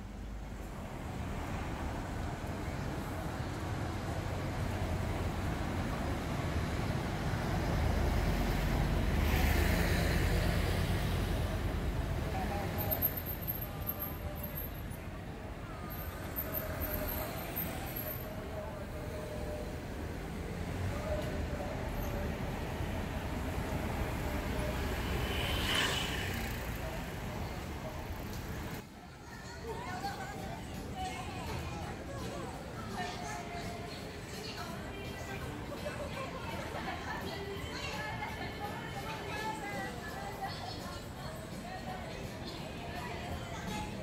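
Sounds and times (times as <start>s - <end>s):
low rumble of slow traffic: 0.0s - 44.0s.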